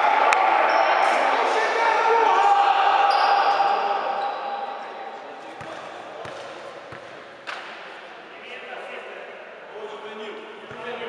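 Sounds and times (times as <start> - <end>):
echoing voices in a gym: 0.0 - 11.0
sharp slap: 7.4 - 7.9.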